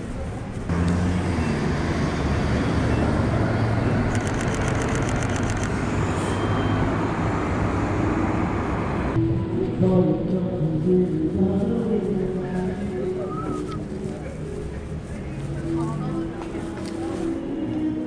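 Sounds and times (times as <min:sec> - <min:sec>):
bus engine running: 0:00.0 - 0:17.8
city street traffic: 0:00.0 - 0:18.0
camera shutter clicks: 0:04.1 - 0:05.7.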